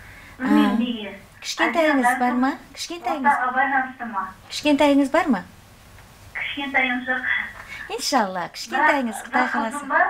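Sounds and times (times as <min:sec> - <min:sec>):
woman talking: 0:00.4 - 0:05.5, 0:06.4 - 0:10.0.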